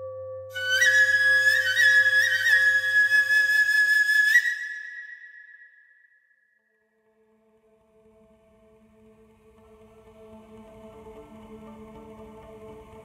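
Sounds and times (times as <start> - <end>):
bamboo flute high note: 0.0 - 5.6.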